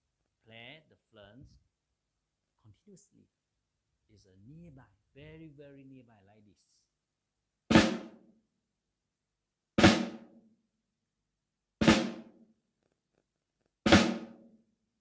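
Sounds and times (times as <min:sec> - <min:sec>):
snare drum flams: 0:07.7 - 0:08.2, 0:09.8 - 0:10.4, 0:11.8 - 0:12.4, 0:13.9 - 0:14.5.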